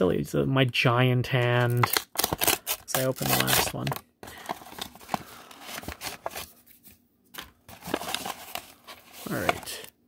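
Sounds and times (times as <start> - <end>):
cardboard tearing and rustling: 1.9 - 6.5, 7.7 - 9.8.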